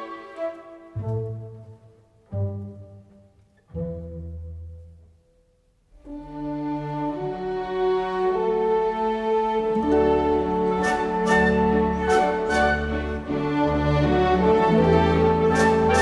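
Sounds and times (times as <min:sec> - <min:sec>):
slow bowed string music: 0:00.0 - 0:16.0.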